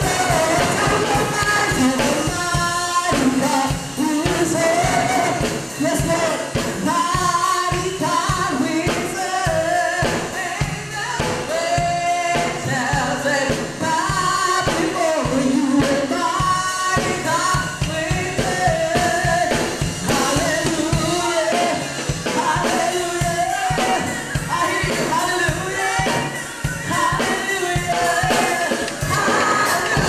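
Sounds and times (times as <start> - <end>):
instrumental accompaniment: 0.0 - 30.0
steady drum beat: 0.0 - 30.0
woman singing into a microphone: 0.0 - 30.0.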